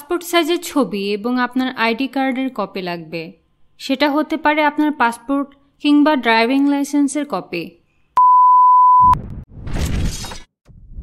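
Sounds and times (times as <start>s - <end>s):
steady beep: 8.2s - 9.2s.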